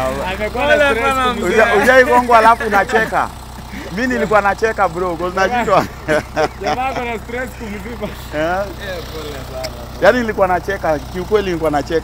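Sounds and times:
people laughing: 0:00.0 - 0:09.6
people talking: 0:00.0 - 0:12.0
steady low hum: 0:00.0 - 0:12.0.

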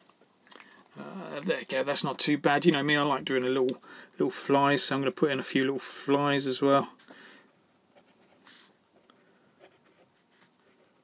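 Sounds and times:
pen scratching on paper: 0:09.6 - 0:11.0.

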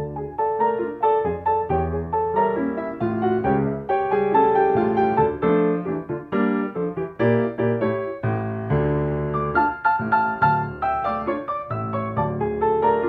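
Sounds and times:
piano chords: 0:00.0 - 0:13.0.

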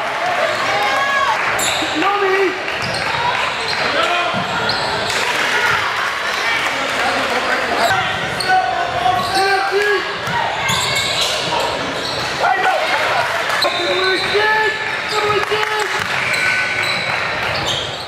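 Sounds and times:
shouts and chatter: 0:00.0 - 0:18.0
basketball bouncing on court: 0:15.1 - 0:18.0.

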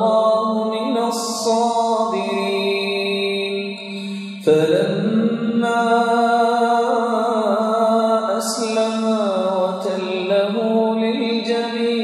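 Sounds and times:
man reciting melodically: 0:00.0 - 0:12.0.

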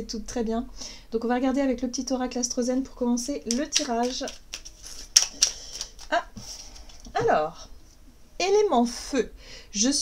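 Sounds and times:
cards clicking together: 0:03.5 - 0:06.1.

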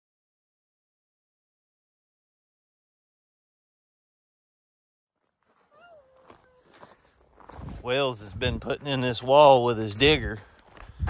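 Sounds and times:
faint footsteps outdoors: 0:05.1 - 0:11.0
man's voice: 0:07.8 - 0:10.5.

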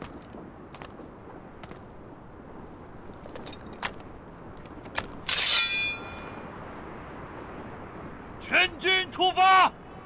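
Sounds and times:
sword blade scraping and ringing: 0:05.3 - 0:06.4.

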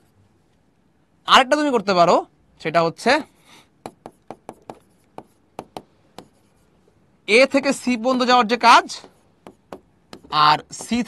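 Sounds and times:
stylus tapping on touchscreen: 0:03.8 - 0:06.6, 0:08.9 - 0:11.0.

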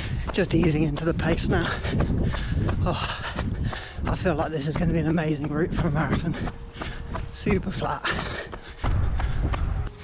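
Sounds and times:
footsteps on tarmac: 0:00.0 - 0:10.0.

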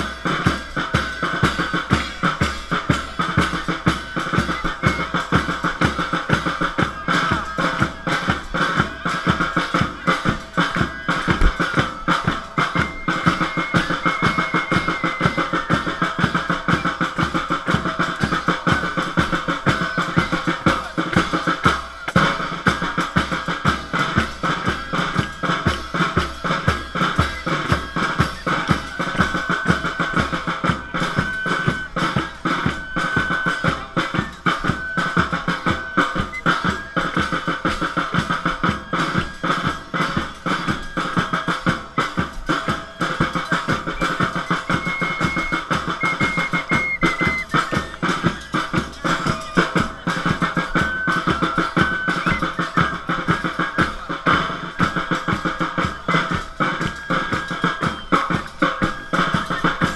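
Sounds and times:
bass drum and snare drums: 0:00.0 - 0:59.9
sustained high instrumental tone: 0:41.4 - 0:56.4.

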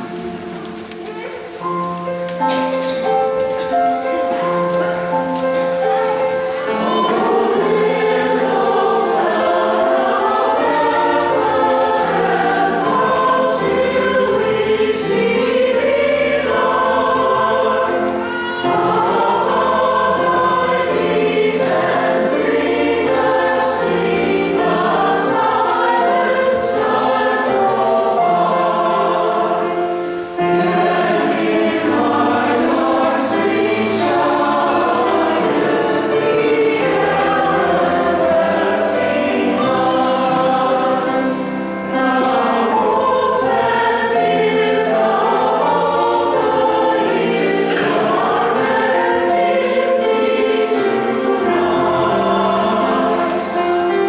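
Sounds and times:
church choir singing: 0:00.0 - 0:54.0.

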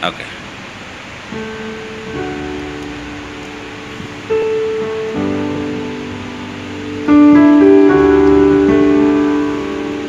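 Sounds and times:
electronic keyboard chords: 0:01.3 - 0:10.0.

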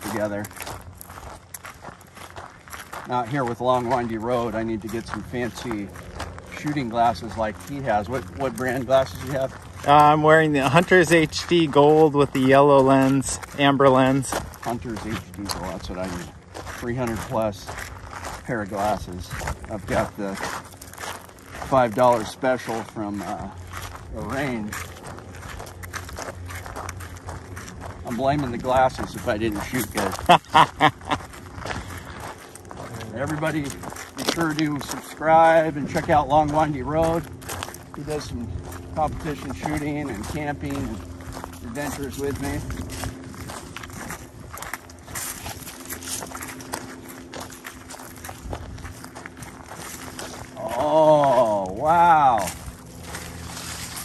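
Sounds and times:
footsteps on gravel: 0:00.0 - 0:54.0.

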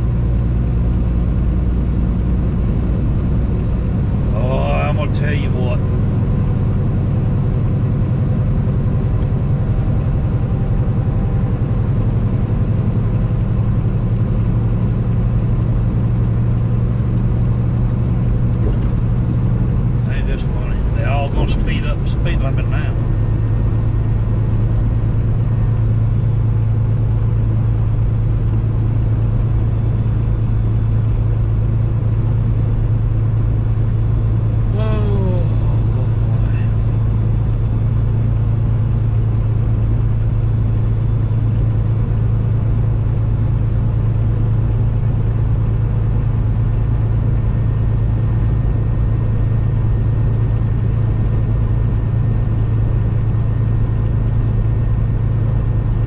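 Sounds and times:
truck engine and road noise: 0:00.0 - 0:56.0.

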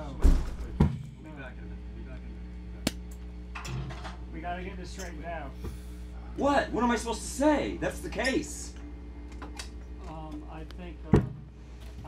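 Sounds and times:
amplifier electric hum: 0:00.0 - 0:12.0
sharp snap: 0:02.8 - 0:03.2.

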